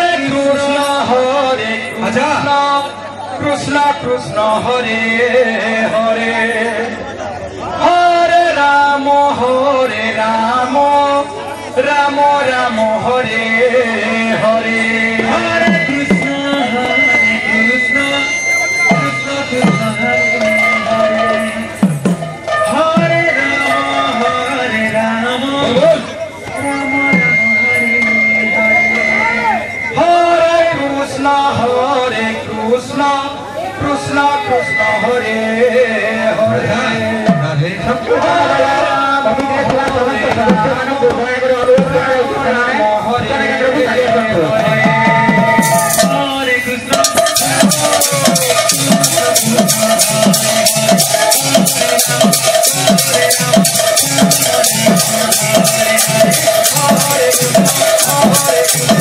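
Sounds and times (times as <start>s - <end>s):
drum strokes bending in pitch: 13.2s - 24.6s, 25.6s - 30.4s, 44.5s - 59.0s
held melody note: 15.2s - 24.7s, 25.3s - 30.4s, 44.6s - 59.0s
steady high ringing tone: 15.8s - 24.1s
amplified voices singing devotional song: 30.0s - 59.0s.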